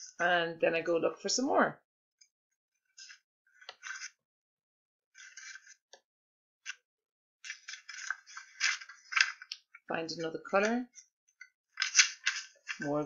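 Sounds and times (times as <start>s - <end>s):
magazine pages rustling: 3.0s - 4.2s, 5.2s - 5.8s, 7.4s - 9.8s, 11.8s - 13.0s.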